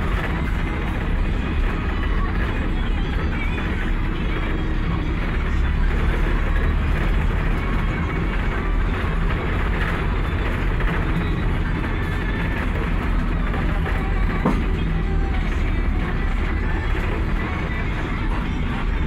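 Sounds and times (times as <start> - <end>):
vehicle engine and road rumble: 0.0 - 19.0.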